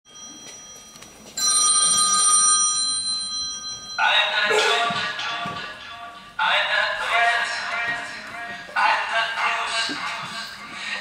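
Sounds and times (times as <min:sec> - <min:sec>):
bell-like chime ringing: 0:00.1 - 0:04.7.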